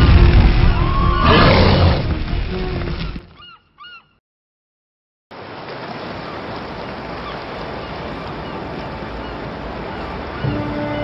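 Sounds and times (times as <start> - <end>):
music: 0.0 - 3.4, 10.4 - 11.0.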